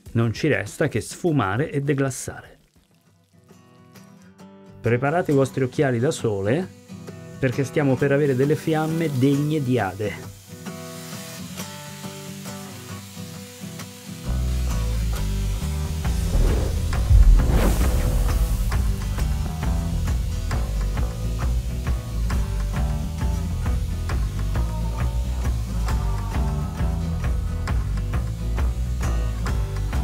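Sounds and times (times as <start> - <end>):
liquid sizzling in hot pan: 2.3 - 4.1, 8.2 - 15.6
flambe fire whoosh: 16.1 - 19.8.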